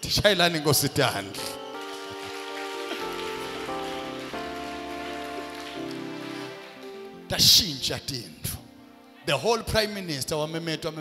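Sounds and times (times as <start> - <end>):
music of held chords: 1.2 - 9.4.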